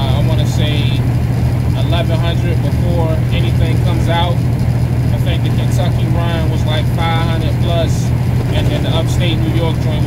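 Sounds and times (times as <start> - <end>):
man talking: 0.0 - 1.0, 1.8 - 4.4, 5.1 - 10.0
truck engine drone and road noise: 0.0 - 10.0.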